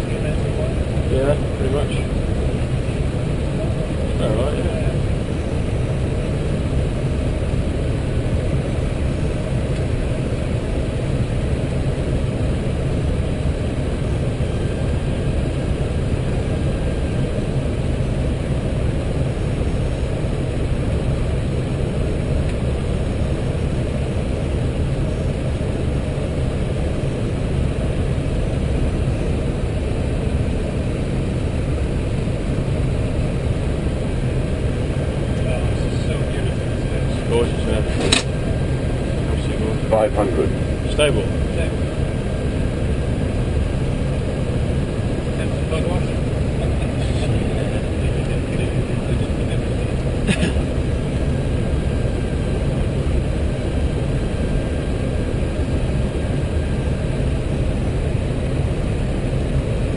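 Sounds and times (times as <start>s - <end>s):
cockpit airflow and engine noise: 0.0s - 59.9s.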